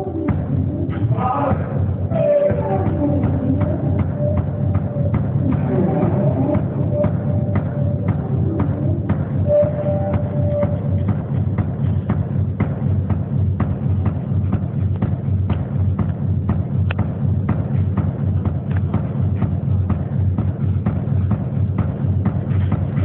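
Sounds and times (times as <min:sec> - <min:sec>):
band music: 0:00.0 - 0:11.6
heavy bass: 0:00.0 - 0:23.0.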